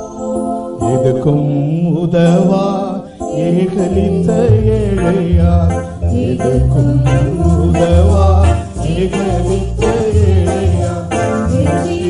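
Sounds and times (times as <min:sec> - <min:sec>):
instrumental backing: 0:00.0 - 0:12.0
man singing: 0:00.8 - 0:12.0.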